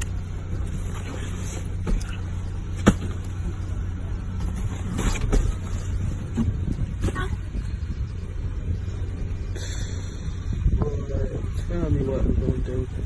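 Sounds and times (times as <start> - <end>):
car cabin rumble: 0.0 - 13.0.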